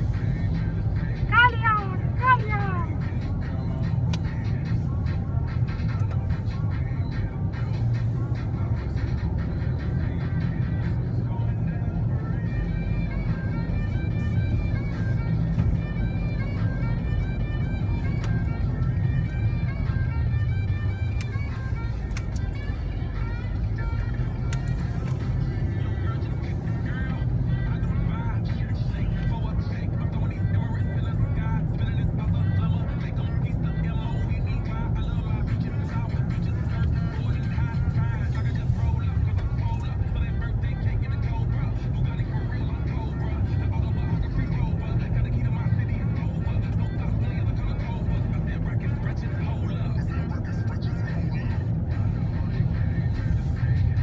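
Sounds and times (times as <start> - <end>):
car road and engine rumble: 0.0 - 54.0
faint music: 0.0 - 54.0
faint voice: 1.3 - 3.0.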